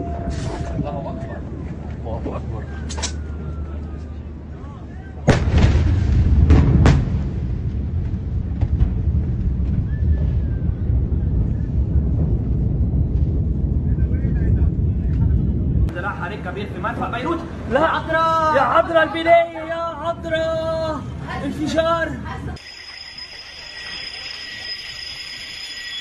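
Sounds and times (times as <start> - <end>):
low rumble: 0.0 - 18.3
explosion boom: 5.3 - 15.9.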